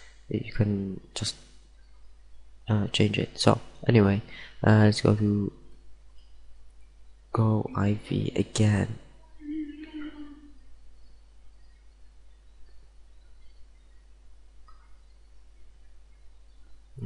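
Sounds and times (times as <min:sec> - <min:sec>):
microphone hiss and hum: 0:00.0 - 0:17.0
person humming: 0:09.4 - 0:10.6.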